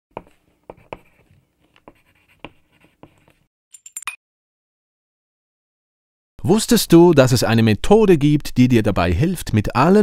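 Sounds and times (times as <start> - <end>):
pen scratching on paper: 0.2 - 3.4.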